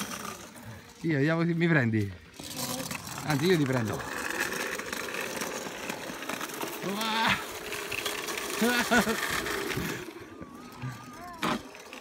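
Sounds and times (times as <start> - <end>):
hoverboard motors: 0.0 - 12.0
small wheels rolling on asphalt: 0.0 - 12.0.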